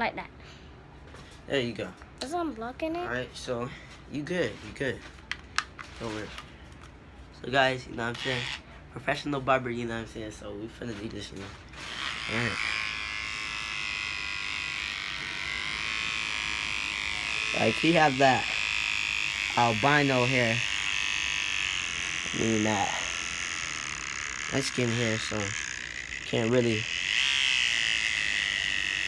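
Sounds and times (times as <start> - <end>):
electric hair trimmer buzzing: 8.0 - 8.6, 11.7 - 29.0.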